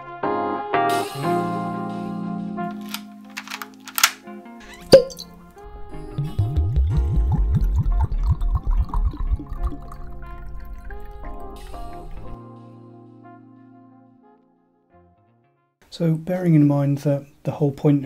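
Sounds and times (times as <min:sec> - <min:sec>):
sharp clicks: 0:02.7 - 0:04.2.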